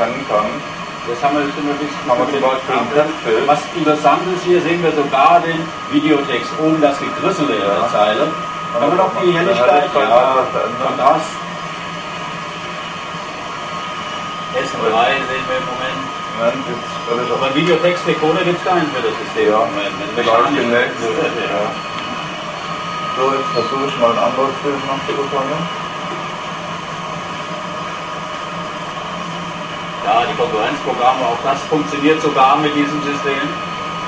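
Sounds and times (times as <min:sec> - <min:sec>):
motor-driven rotor whirring: 0:00.0 - 0:34.0.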